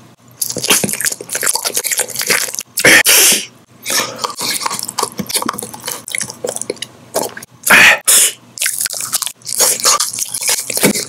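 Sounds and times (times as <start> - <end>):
chewing and crunching candy: 0.4 - 3.0, 3.9 - 7.5, 8.6 - 11.0
mouth sounds: 0.4 - 8.4.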